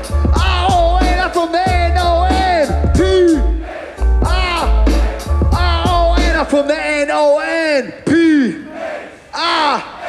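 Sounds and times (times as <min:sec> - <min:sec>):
crowd noise: 0:00.0 - 0:10.0
man shouting into a microphone: 0:00.3 - 0:03.6, 0:04.2 - 0:04.8, 0:05.5 - 0:08.7, 0:09.3 - 0:10.0.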